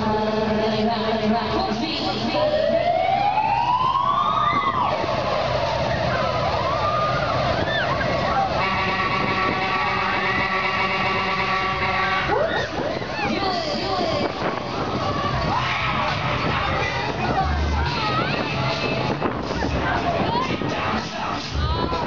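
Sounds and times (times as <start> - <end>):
fairground ride running: 0.0 - 22.0
siren-like rising tone: 2.3 - 13.2.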